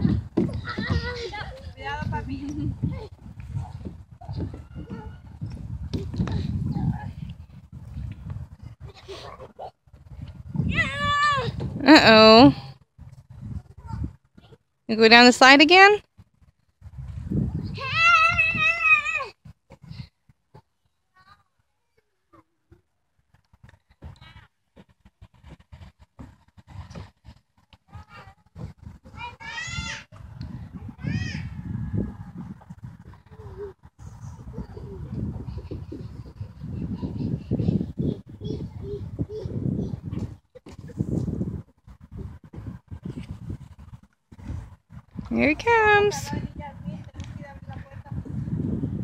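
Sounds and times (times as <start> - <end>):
child squealing: 17.8 - 19.3.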